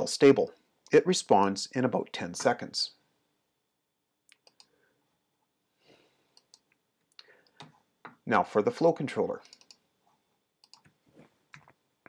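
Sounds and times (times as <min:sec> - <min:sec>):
computer mouse clicks: 0:04.3 - 0:04.8, 0:06.4 - 0:07.8, 0:09.4 - 0:09.8, 0:10.6 - 0:11.8.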